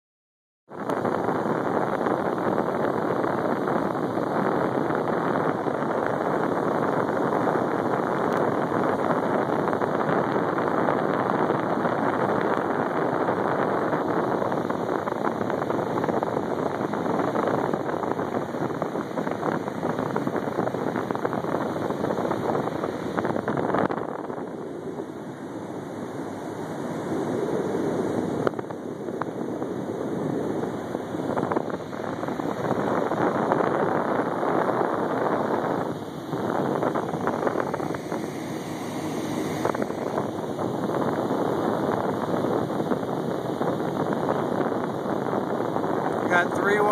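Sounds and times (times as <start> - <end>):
sea: 0.7 - 46.9
wind buffeting microphone: 0.7 - 46.9.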